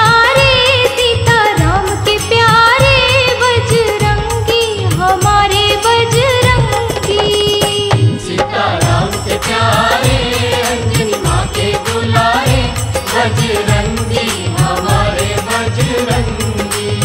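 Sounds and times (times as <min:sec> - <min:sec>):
devotional song over steady beat: 0:00.0 - 0:17.0.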